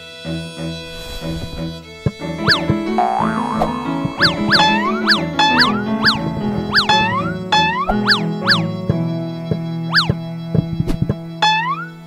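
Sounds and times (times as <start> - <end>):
low sustained accompaniment notes: 0.0 - 12.0
swooping boing-like pitch glides: 2.4 - 9.0, 11.4 - 12.0.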